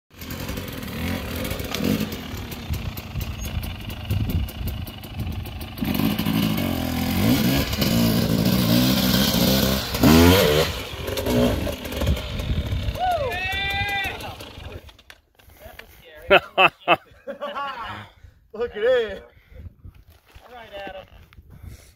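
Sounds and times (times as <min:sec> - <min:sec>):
dirt bike engines revving: 0:00.2 - 0:15.0.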